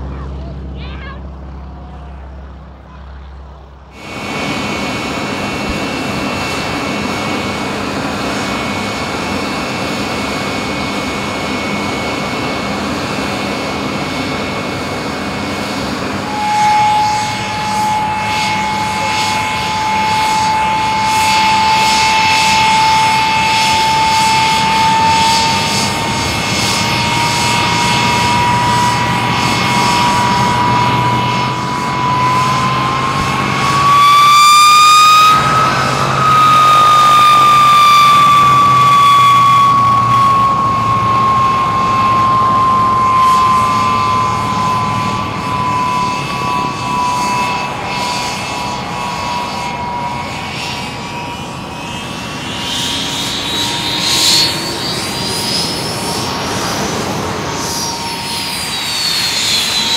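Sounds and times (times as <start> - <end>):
high multi-tone whine: 0.0 - 59.9
jet engine running: 0.0 - 59.9
jet engine whine rising: 0.0 - 59.9.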